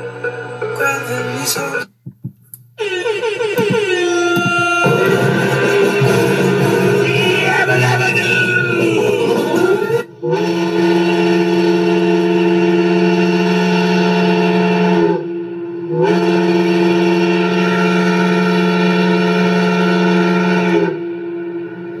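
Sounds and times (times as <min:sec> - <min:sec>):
factory whistle blasts: 0:02.8 - 0:22.0.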